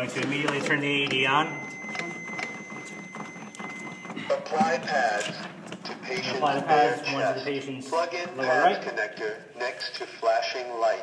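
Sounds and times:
pads clicking and rustling: 0.0s - 6.7s.

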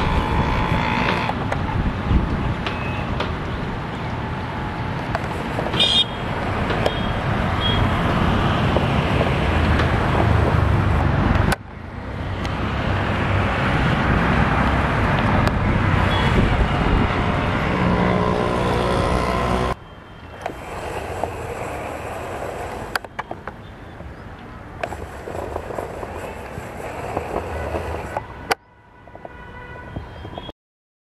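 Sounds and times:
train running and wind rush: 0.0s - 30.5s.

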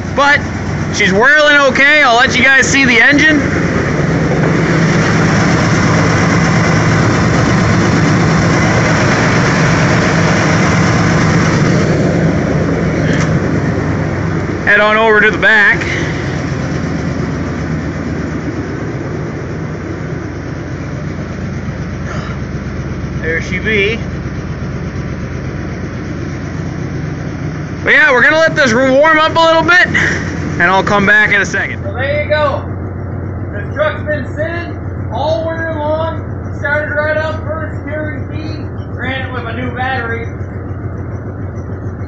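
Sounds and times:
truck engine idling: 0.0s - 42.0s.

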